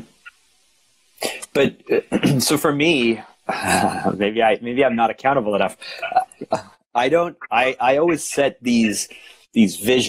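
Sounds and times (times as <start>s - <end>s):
man clearing his throat: 1.2s - 2.6s, 3.5s - 4.2s, 5.8s - 6.6s
man speaking: 1.2s - 10.0s.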